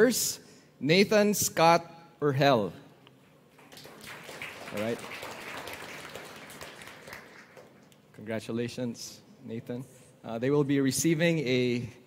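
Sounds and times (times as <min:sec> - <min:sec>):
crowd applauding: 0:03.6 - 0:08.0.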